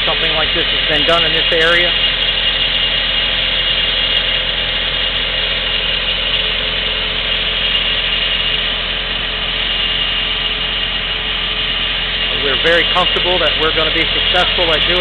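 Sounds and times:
engine idling: 0.0 - 15.0.

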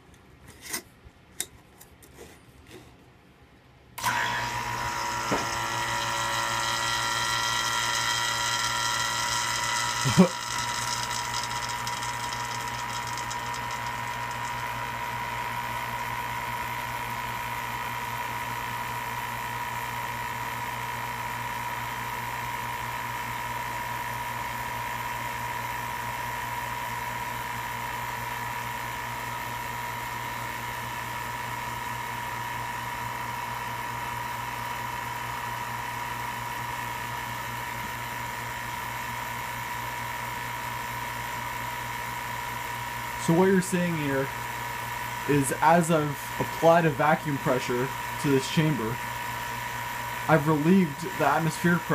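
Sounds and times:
vacuum pump humming and whining: 4.0 - 51.9.

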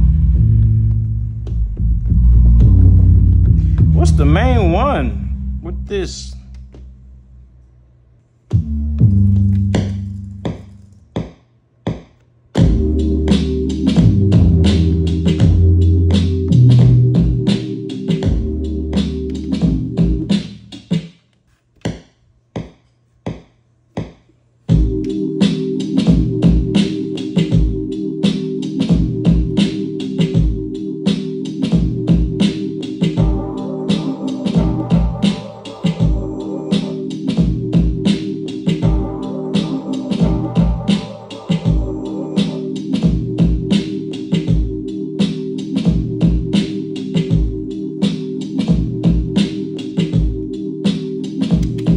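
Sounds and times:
low bass line: 0.0 - 7.5, 8.5 - 11.0, 12.6 - 20.6
sampled drum beat: 1.4 - 7.0, 8.5 - 21.1, 22.6 - 51.9.

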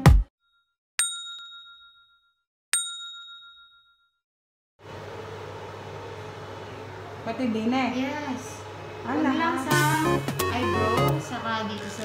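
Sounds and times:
bright bell ding: 0.4 - 4.2
dance music: 9.7 - 11.2.

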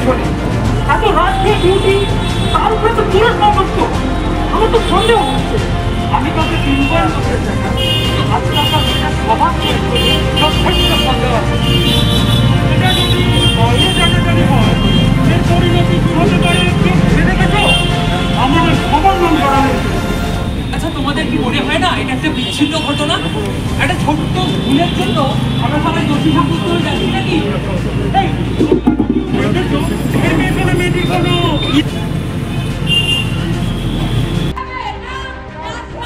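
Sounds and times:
person speaking over loudspeaker: 0.0 - 11.8, 12.7 - 19.8, 20.8 - 31.8
voice over loudspeakers: 0.9 - 12.0.

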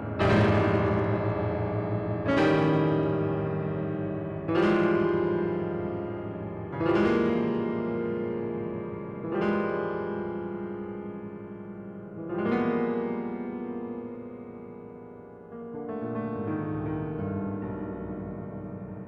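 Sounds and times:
piano chords ringing: 0.0 - 19.0.

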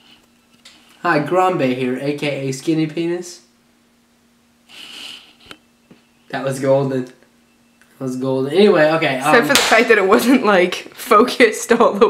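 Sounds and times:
puff of breath through nose: 4.7 - 5.4.

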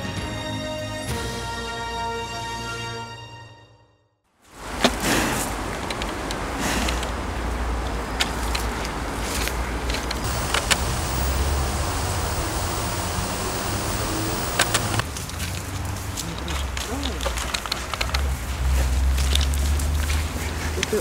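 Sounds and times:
road traffic rumbling hiss: 6.4 - 16.1
sharp clicks and knocks: 10.2 - 15.0.

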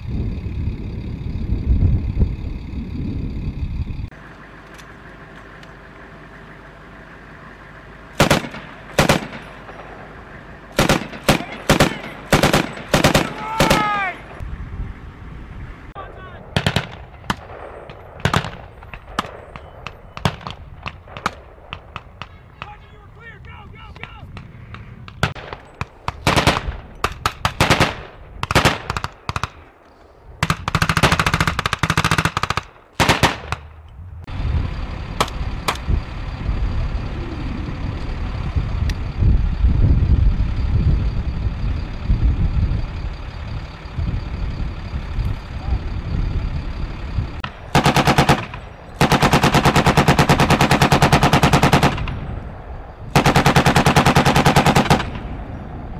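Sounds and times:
military vehicle engine running: 0.0 - 55.9
machine-gun fire: 8.2 - 10.0, 10.8 - 14.2, 16.5 - 19.6, 25.2 - 29.6, 30.4 - 33.7, 47.4 - 52.2, 53.1 - 55.3.

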